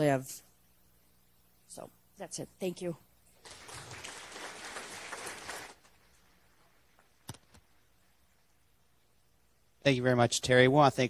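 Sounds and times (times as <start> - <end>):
audience applauding: 3.4 - 6.2.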